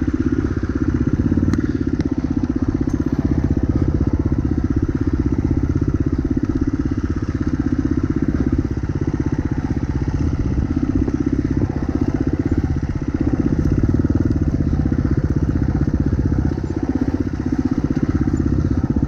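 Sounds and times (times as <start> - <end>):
dirt bike engine chugging: 0.0 - 19.0.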